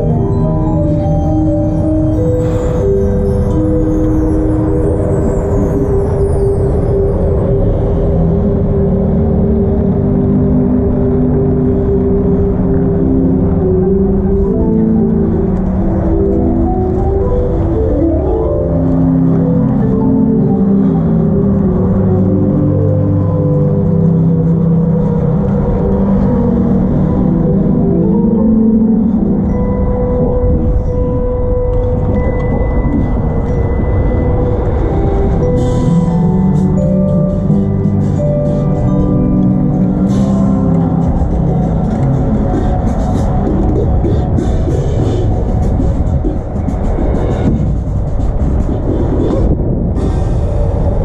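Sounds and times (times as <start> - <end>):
heavy low rumble: 0.0 - 51.0
low sustained synth-like chords: 0.0 - 51.0
percussion ensemble music: 31.9 - 50.6.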